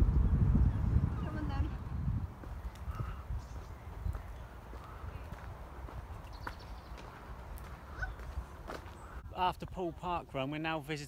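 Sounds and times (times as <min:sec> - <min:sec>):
wind on microphone: 0:00.0 - 0:09.4
footsteps on gravel: 0:03.6 - 0:09.9.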